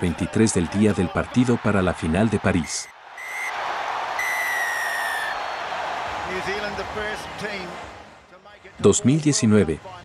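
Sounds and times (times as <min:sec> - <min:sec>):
stadium crowd noise: 0:00.0 - 0:10.0
referee's whistle blast: 0:02.6 - 0:03.6, 0:04.2 - 0:05.4.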